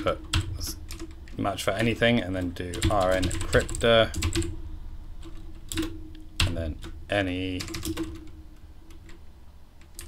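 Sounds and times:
keyboard keys clicking: 0:00.0 - 0:04.5, 0:05.2 - 0:09.2, 0:09.8 - 0:10.0.

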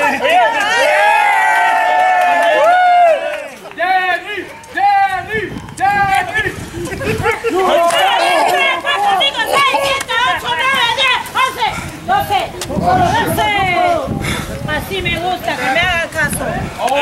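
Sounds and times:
crowd shouting: 0:00.0 - 0:14.2.

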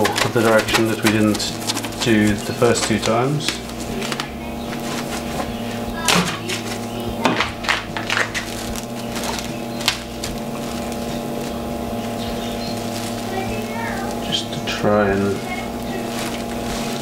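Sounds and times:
plastic cling film crackling: 0:00.0 - 0:17.0
steady hum with pulsing low note: 0:00.0 - 0:17.0.

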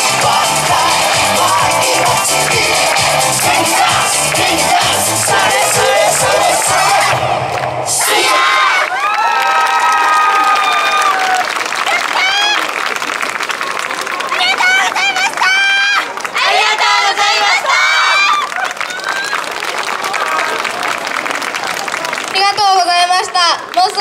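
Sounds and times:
dance music with a beat: 0:00.0 - 0:08.3
shouting and cheering: 0:00.0 - 0:24.0.

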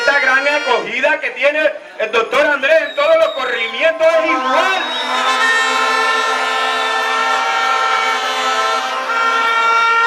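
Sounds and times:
horns blowing a chord: 0:03.0 - 0:10.0.

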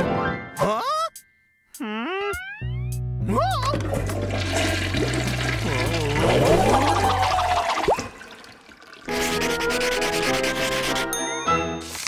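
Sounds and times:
low background music: 0:02.7 - 0:07.3
cartoon toilet flush: 0:03.6 - 0:09.7.

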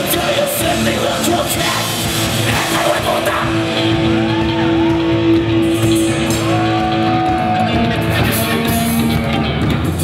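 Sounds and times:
rock band playing loudly: 0:00.0 - 0:10.0.

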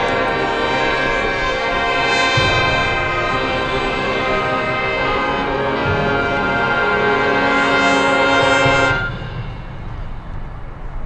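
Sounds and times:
marching band brass chord: 0:00.0 - 0:10.4.

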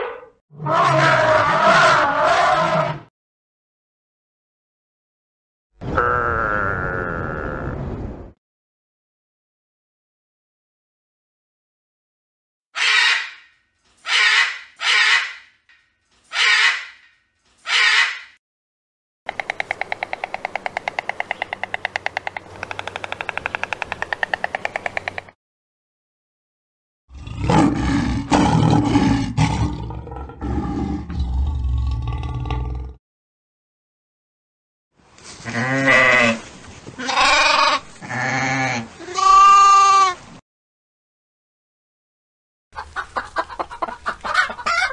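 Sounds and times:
macaw squawking: 0:12.8 - 0:13.5, 0:14.1 - 0:15.5, 0:16.3 - 0:17.0, 0:17.7 - 0:18.3
sheep bleating: 0:37.0 - 0:40.1.

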